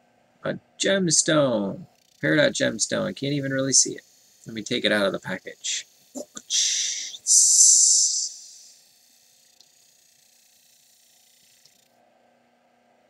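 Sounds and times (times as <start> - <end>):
faint hum: 0.0 - 8.8.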